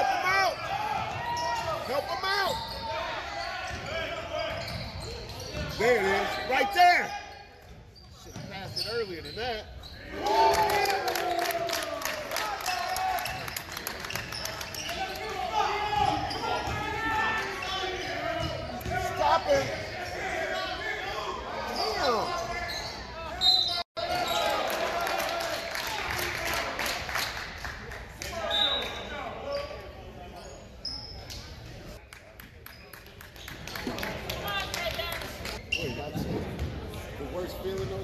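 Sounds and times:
sneaker squeaks: 0.3s - 10.2s, 13.1s - 20.8s, 21.5s - 24.5s, 28.4s - 32.0s, 35.6s - 36.7s.

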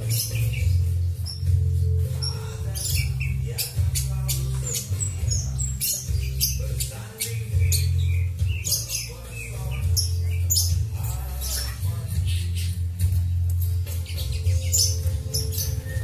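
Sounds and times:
background music with bass line: 0.0s - 16.0s
caged birds chirping and squawking: 0.0s - 16.0s.

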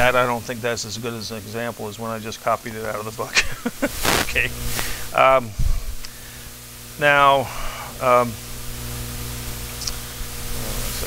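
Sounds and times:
even hiss: 0.0s - 11.0s
steady electrical hum: 0.0s - 11.0s.

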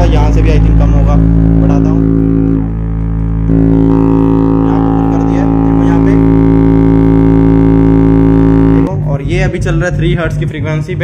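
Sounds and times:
low test tone drone: 0.0s - 11.0s.

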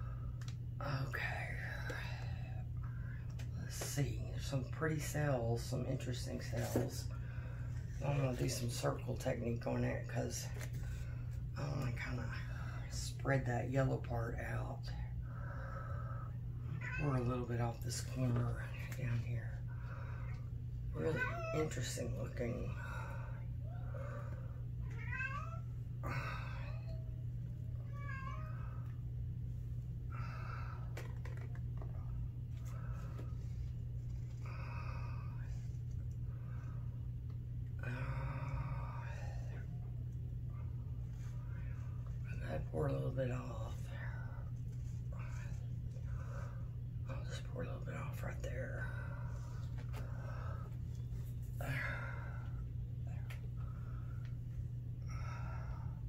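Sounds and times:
steady low hum: 0.0s - 56.0s
person whispering: 0.8s - 2.7s, 47.1s - 49.2s
cat meowing: 24.8s - 27.0s, 27.8s - 28.7s.

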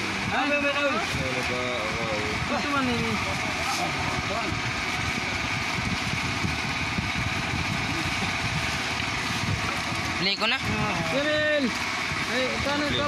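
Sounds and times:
small engine running: 0.0s - 13.0s.

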